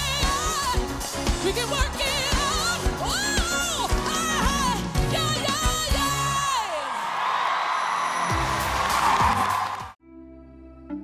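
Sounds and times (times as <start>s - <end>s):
audience cheering and applauding: 6.5s - 10.0s.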